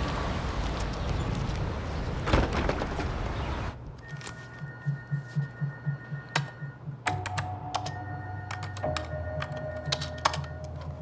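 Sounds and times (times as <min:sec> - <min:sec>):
keyboard keys clicking: 0:04.0 - 0:11.0.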